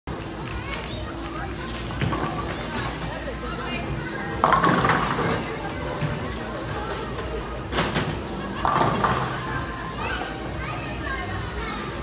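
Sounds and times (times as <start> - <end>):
children's voices and chatter: 0.1 - 12.0.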